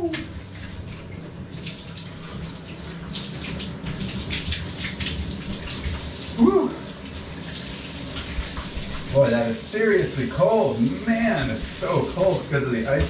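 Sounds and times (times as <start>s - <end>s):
shower water hissing: 0.0s - 13.0s
water splashing: 0.0s - 13.0s.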